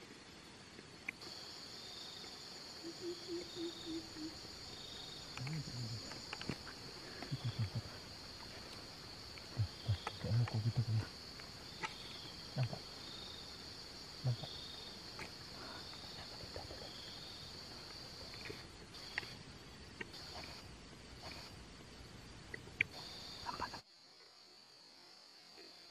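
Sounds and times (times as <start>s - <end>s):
faint insect chirps: 0.0s - 25.9s
high-pitched insect drone: 1.2s - 19.4s.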